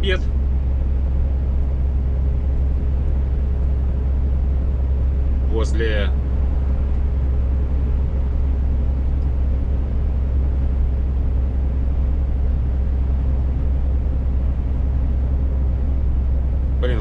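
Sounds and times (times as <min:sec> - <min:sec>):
road noise: 0:00.0 - 0:17.0
truck engine drone: 0:00.0 - 0:17.0.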